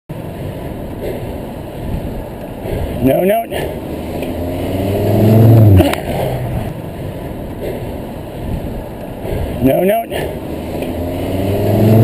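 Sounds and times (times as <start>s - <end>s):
passing car engine hum: 0.1s - 12.0s
wind rush on microphone: 0.8s - 3.0s, 6.3s - 9.6s.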